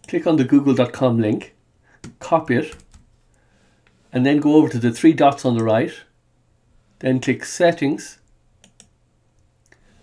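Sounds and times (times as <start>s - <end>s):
faint computer mouse clicks: 8.6s - 9.8s.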